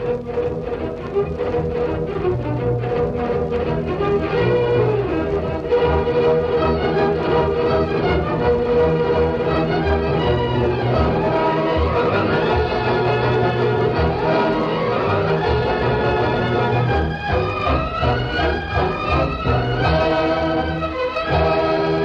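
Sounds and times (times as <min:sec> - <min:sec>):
orchestral string music: 0:00.0 - 0:22.0.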